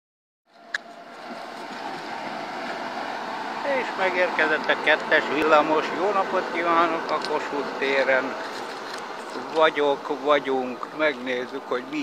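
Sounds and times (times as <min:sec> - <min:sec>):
tram wheels rumbling on rails: 0:00.8 - 0:10.0.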